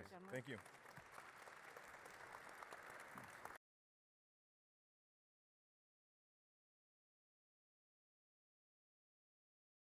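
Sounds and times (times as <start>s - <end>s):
faint audience applause: 0.0s - 3.6s.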